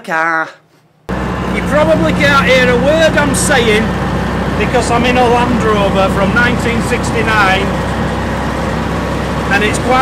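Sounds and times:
car engine drone inside cabin: 0:01.1 - 0:10.0.

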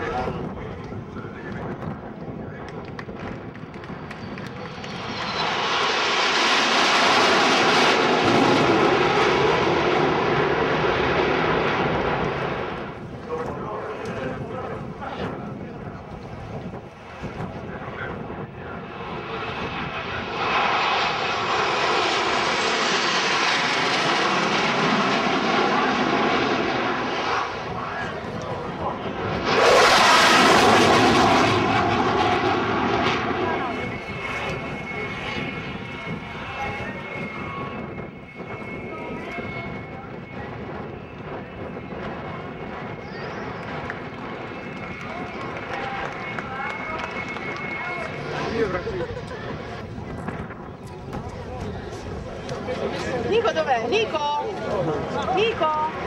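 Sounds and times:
jet aircraft flying past: 0:00.0 - 0:56.0.

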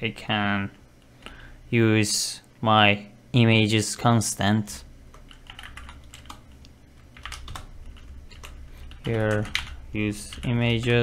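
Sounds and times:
computer keyboard typing: 0:05.1 - 0:11.0.

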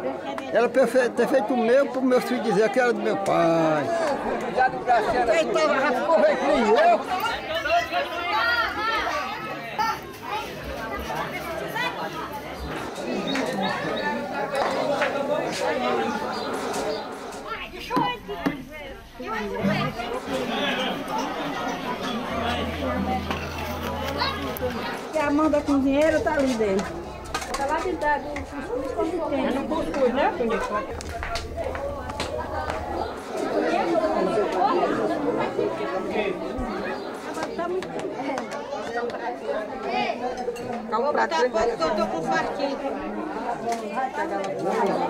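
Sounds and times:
people chattering: 0:00.0 - 0:45.0.

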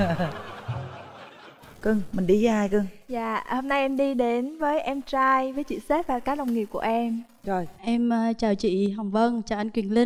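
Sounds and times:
people laughing: 0:00.0 - 0:01.8
woman speaking: 0:01.8 - 0:10.0.

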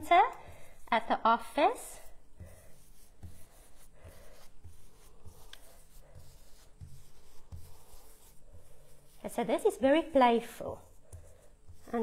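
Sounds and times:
soft brushing on paper: 0:00.0 - 0:12.0.

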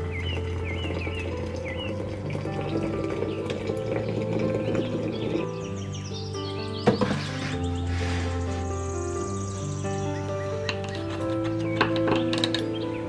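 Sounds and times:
background music with held notes: 0:00.0 - 0:13.0
bird-like chirps: 0:02.6 - 0:13.0.

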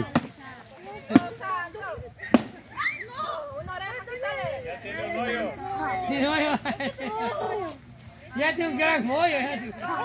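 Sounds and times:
children's voices: 0:00.0 - 0:08.4
stick whacking pinata: 0:02.3 - 0:02.6.

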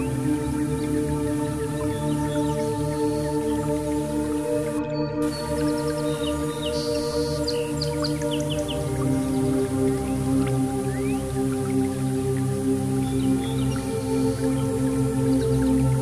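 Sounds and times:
high birdsong chirps: 0:00.0 - 0:16.0
synthesizer pad chords: 0:00.0 - 0:16.0.

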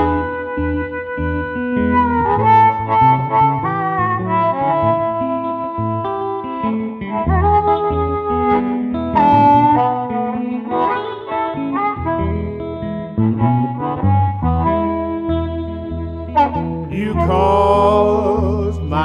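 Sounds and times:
guitar accompaniment: 0:00.0 - 0:19.0.

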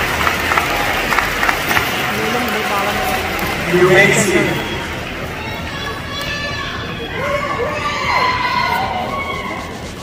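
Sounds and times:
large audience cheering: 0:00.0 - 0:10.0
people shouting and whooping: 0:05.2 - 0:10.0.

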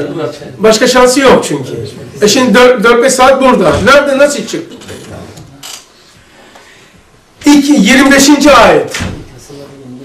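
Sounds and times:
man talking: 0:00.0 - 0:05.4, 0:07.4 - 0:10.0.

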